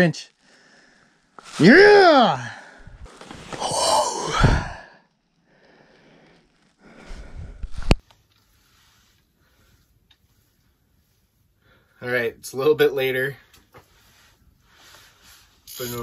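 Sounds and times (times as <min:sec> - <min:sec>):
soft breath: 0:00.4 - 0:01.3, 0:04.6 - 0:12.0
man sighing loudly: 0:03.5 - 0:05.0.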